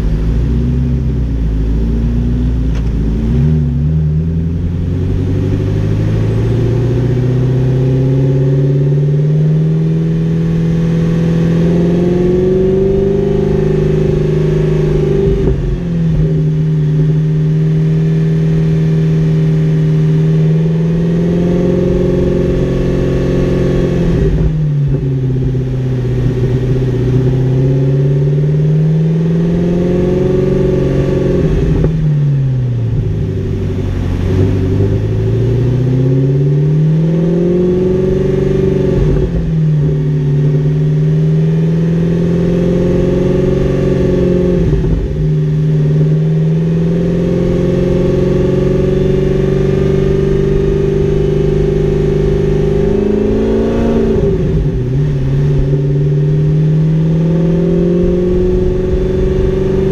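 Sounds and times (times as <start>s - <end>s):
car engine running: 0.0s - 59.9s.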